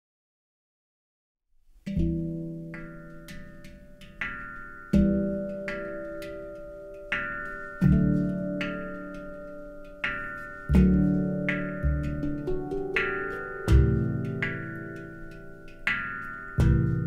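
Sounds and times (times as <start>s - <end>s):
handpans playing: 1.9s - 17.0s.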